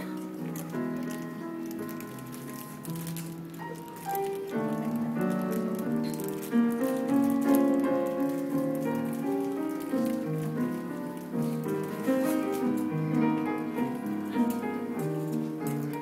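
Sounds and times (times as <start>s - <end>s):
solo piano: 0.0s - 16.0s.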